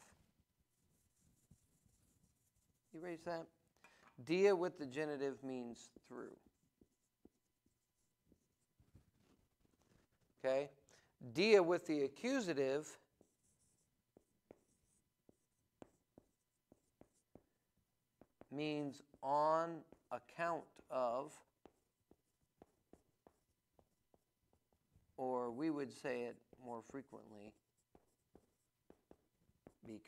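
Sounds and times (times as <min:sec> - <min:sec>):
marker writing on whiteboard: 0:00.0 - 0:10.5, 0:11.7 - 0:30.0.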